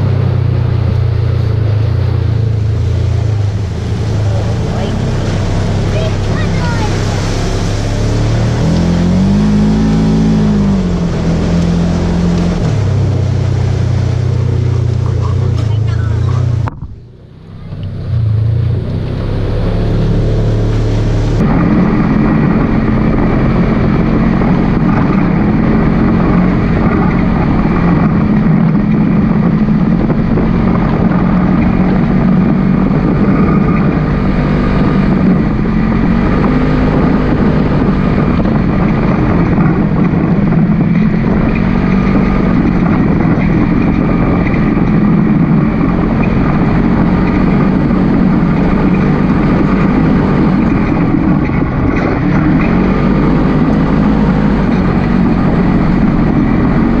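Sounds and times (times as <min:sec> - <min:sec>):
off-road vehicle engine revving: 0:00.0 - 0:57.0.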